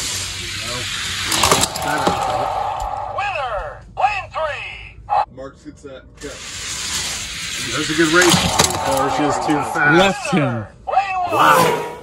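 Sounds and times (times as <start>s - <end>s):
toy cars rolling on plastic track: 0.0s - 2.7s, 6.2s - 9.9s.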